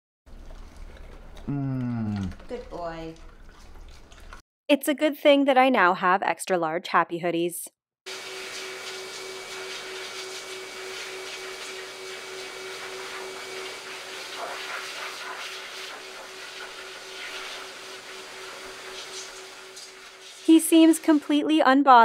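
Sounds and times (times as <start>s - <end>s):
pet blow dryer whining: 8.1s - 20.5s.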